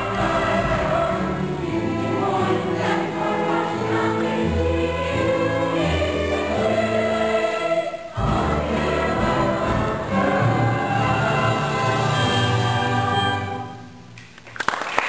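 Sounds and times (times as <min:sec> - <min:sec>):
children's chorus singing: 0:00.0 - 0:14.0
instrumental accompaniment: 0:00.0 - 0:14.4.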